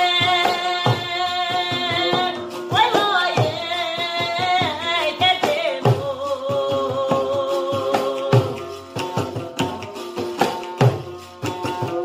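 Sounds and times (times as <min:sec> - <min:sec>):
woman singing with vibrato: 0:00.0 - 0:09.8
frame drum beating: 0:00.0 - 0:12.0
plucked long-necked lute: 0:00.0 - 0:12.0.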